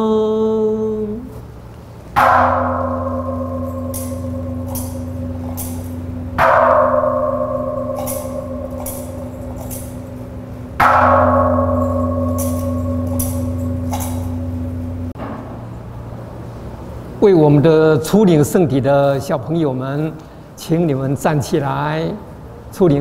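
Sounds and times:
deep altar chime ringing: 2.2s - 15.2s.

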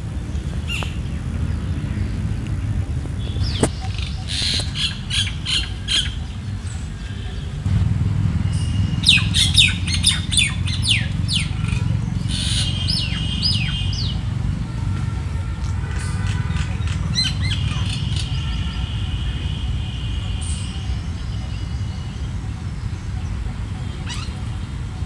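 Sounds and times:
steady low rumble: 0.0s - 16.0s
birds whistled calls: 0.3s - 2.4s, 3.1s - 7.6s, 8.4s - 14.3s, 16.2s - 24.7s.

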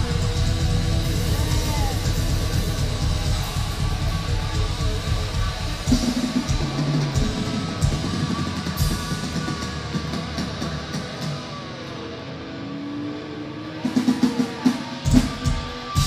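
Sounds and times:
live rock band playing: 0.0s - 12.4s, 13.7s - 16.0s.

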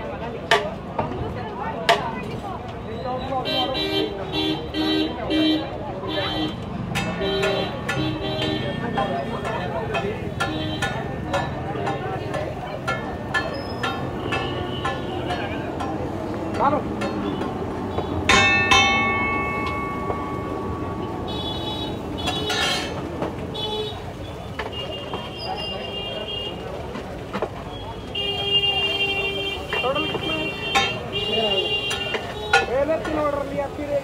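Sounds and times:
loud ringing metallic clang: 18.3s - 21.4s.

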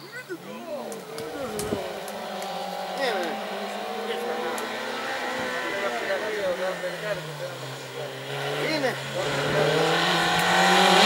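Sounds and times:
race car engine revving: 0.1s - 11.0s.

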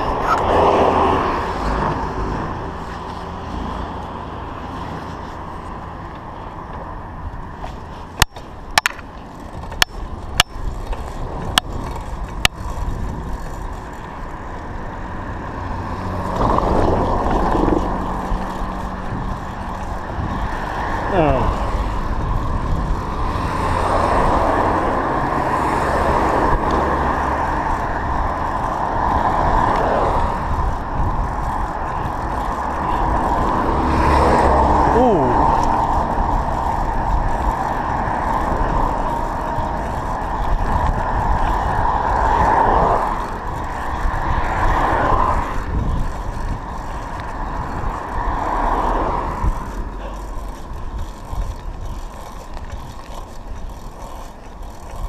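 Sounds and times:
motor vehicles passing: 0.0s - 55.0s
wind and tyres on tarmac: 0.0s - 55.0s.

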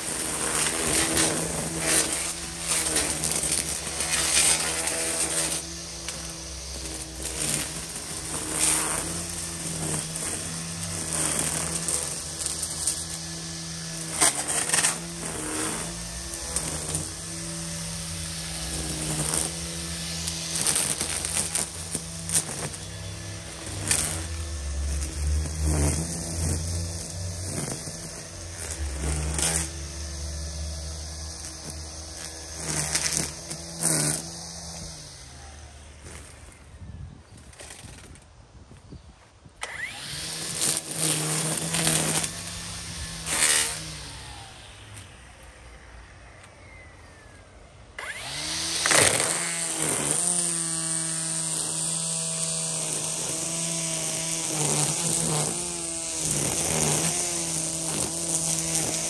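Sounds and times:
trimmer line hitting stems: 0.0s - 35.1s, 39.6s - 44.3s, 48.0s - 59.0s
string trimmer running: 0.0s - 59.0s.

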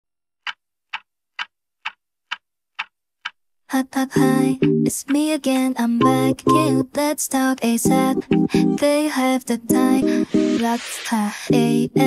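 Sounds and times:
clock-like ticking: 0.4s - 3.4s.

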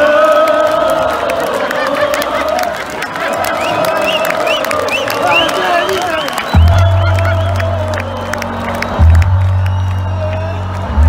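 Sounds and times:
crowd cheering and shouting: 0.0s - 11.0s
people clapping: 0.0s - 11.0s.

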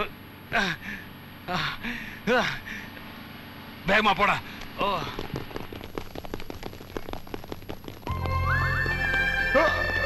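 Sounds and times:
rapid pattering clicks: 4.5s - 10.0s.

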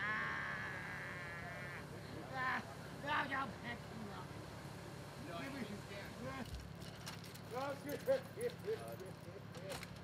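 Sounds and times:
person's wavering vocal cry: 0.0s - 1.8s.

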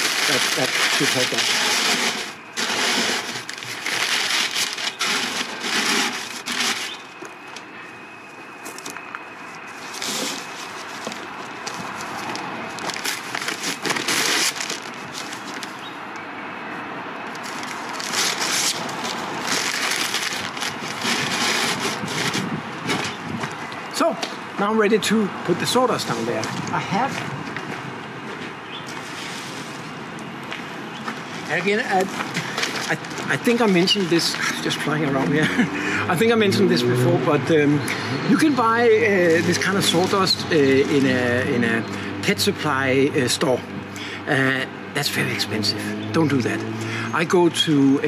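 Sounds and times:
newspaper crumpling and rustling: 0.0s - 7.7s, 8.6s - 15.9s, 17.3s - 23.4s, 31.5s - 35.2s, 38.4s - 41.4s.

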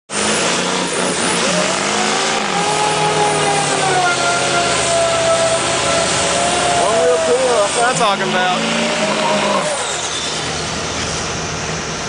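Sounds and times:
truck engine revving hard: 0.1s - 12.0s
tyres spinning: 0.3s - 11.0s.

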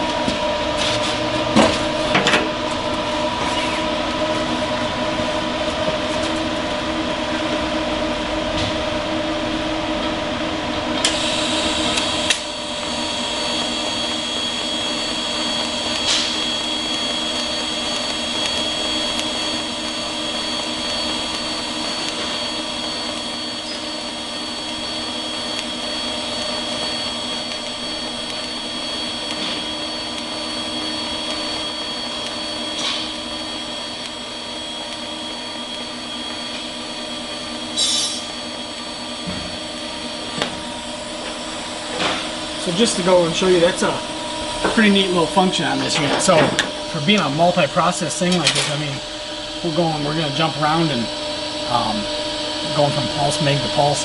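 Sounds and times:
welding arc high whine: 0.0s - 54.0s.

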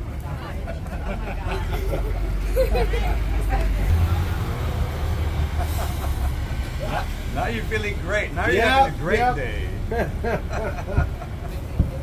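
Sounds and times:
trucks driving on cobblestones: 0.0s - 12.0s.

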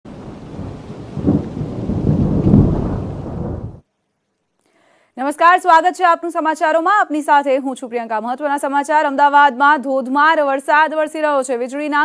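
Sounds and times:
heavy rain: 0.1s - 3.8s
rumbling thunder: 0.1s - 3.8s.

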